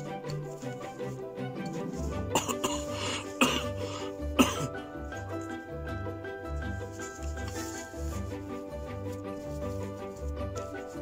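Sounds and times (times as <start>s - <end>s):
background music: 0.0s - 11.0s
person coughing: 2.3s - 4.8s.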